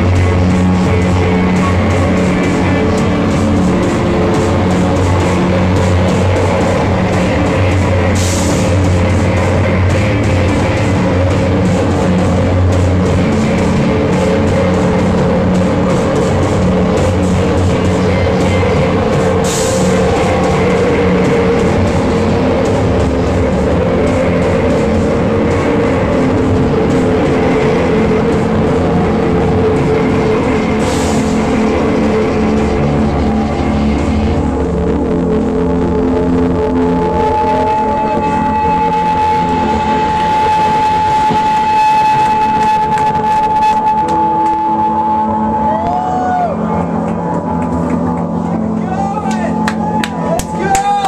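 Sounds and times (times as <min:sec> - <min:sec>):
distorted noise rock band playing: 0:00.0 - 0:51.0.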